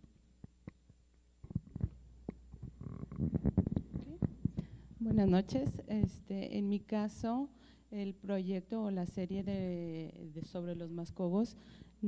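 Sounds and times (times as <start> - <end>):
microphone handling knocks and rustles: 1.4 - 6.3.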